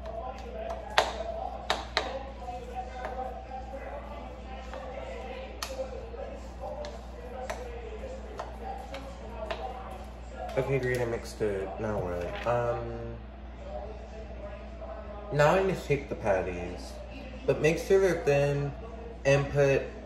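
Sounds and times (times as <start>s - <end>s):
spoon stirring in a plastic bowl: 0.0s - 11.2s.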